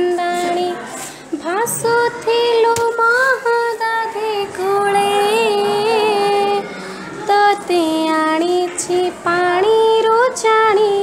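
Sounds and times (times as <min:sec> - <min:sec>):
girl singing devotional song: 0:00.0 - 0:11.0.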